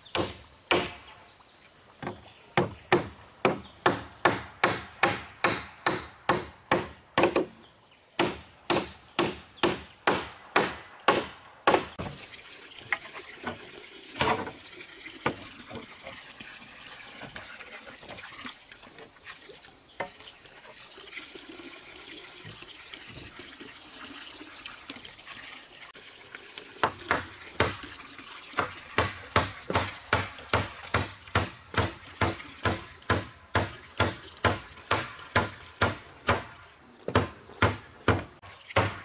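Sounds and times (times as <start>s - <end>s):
hammer striking nails into wood: 0.1s - 1.0s, 2.6s - 7.5s, 8.2s - 11.9s, 28.6s - 36.5s, 37.1s - 39.0s
wooden planks knocking: 2.0s - 7.6s, 28.6s - 39.0s.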